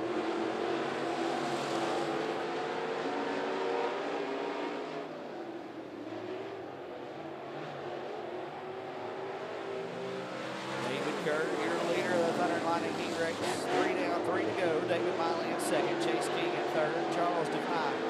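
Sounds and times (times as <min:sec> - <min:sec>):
race car engines at speed: 0:00.0 - 0:18.0.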